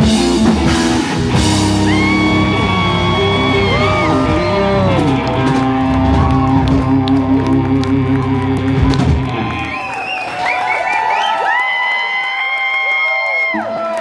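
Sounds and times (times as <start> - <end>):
high held notes: 0.0 - 9.8
live band playing: 0.0 - 10.5
crowd cheering and whooping: 1.3 - 14.0.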